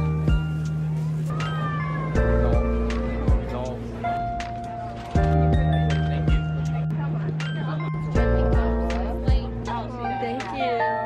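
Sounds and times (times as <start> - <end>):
lo-fi hip-hop music: 0.0 - 10.8.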